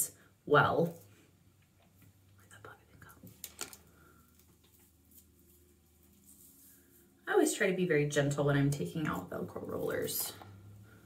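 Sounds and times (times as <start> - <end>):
velcro roller rustling out of hair: 3.3 - 7.2.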